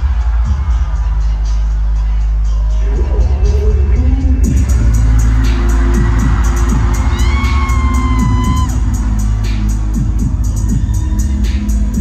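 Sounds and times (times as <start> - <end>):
crowd cheering: 0.0 - 3.4, 4.4 - 12.0
loud live music: 0.0 - 12.0.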